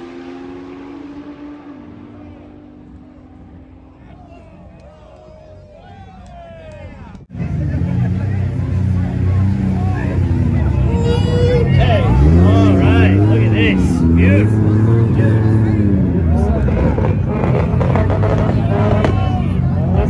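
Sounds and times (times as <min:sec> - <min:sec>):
car engine revving: 0:00.0 - 0:04.2, 0:07.3 - 0:20.0
crowd voices: 0:00.0 - 0:20.0.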